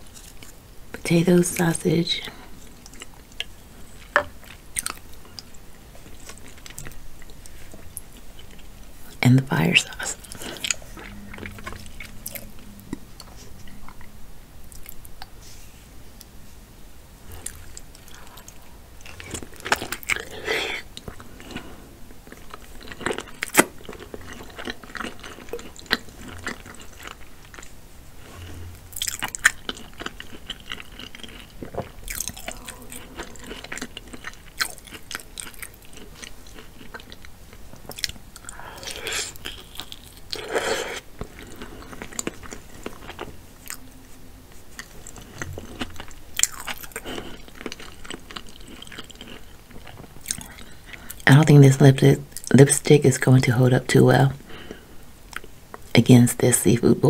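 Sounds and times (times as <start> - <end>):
chewing and biting food: 2.6 - 8.8, 9.9 - 14.1, 17.3 - 43.9, 44.5 - 51.2.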